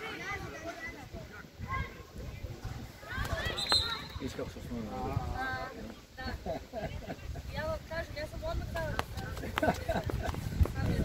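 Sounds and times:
voices calling out: 0:00.0 - 0:07.4.

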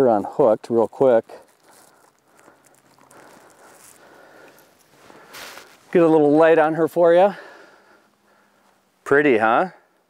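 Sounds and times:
faint handling noise: 0:00.0 - 0:06.4
low outdoor background: 0:00.0 - 0:10.0.

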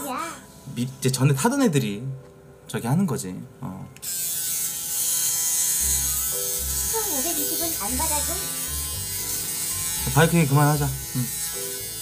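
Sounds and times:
electric shaver buzzing: 0:04.0 - 0:12.0.

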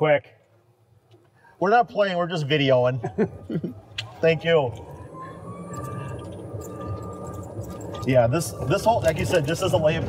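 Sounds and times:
golf cart driving: 0:00.8 - 0:10.0.

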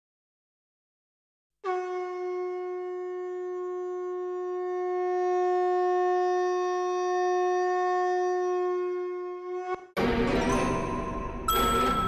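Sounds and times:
conch shell blown: 0:01.6 - 0:09.9.

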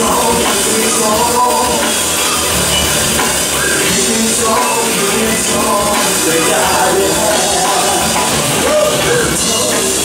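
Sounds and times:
drum kit: 0:00.0 - 0:10.0
live rock band playing: 0:00.0 - 0:10.0.

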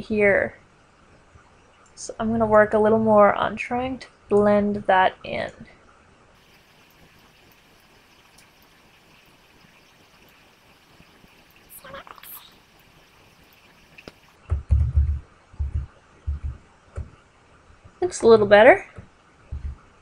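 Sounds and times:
faint steady hiss: 0:00.0 - 0:20.0
dull low thumps: 0:14.4 - 0:17.2, 0:19.5 - 0:19.9.

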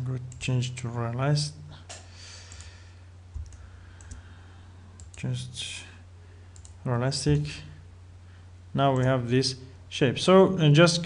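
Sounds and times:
steady low hum: 0:00.0 - 0:11.0
computer mouse clicks: 0:01.9 - 0:04.2, 0:05.0 - 0:05.2, 0:06.5 - 0:06.8.

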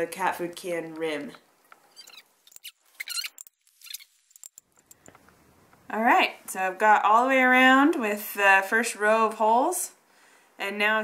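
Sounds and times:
metallic clicks: 0:02.5 - 0:05.3.

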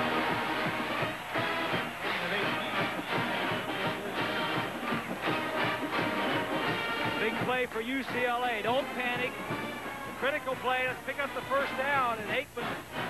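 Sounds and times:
horn lines: 0:00.0 - 0:13.0
steady drum beat: 0:00.0 - 0:13.0.

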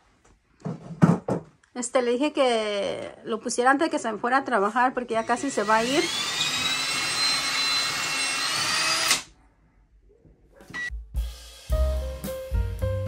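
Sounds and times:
power drill running: 0:05.1 - 0:09.3
background music with drums and bass: 0:10.9 - 0:13.0.

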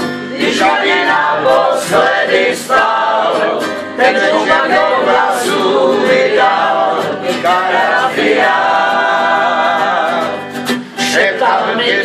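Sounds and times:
acoustic guitars: 0:00.0 - 0:12.0
men and women singing in chorus: 0:00.3 - 0:12.0.

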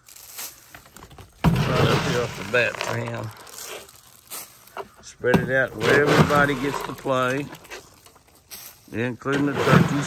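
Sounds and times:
pellets pattering onto dry leaves: 0:00.0 - 0:05.8, 0:06.4 - 0:09.3
loud rustling scrape: 0:01.4 - 0:04.5, 0:05.5 - 0:08.0, 0:09.2 - 0:10.0.

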